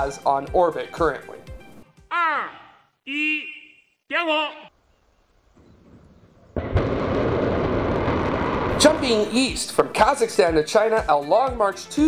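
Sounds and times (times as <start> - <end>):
rocket engines roaring: 5.8 - 10.0.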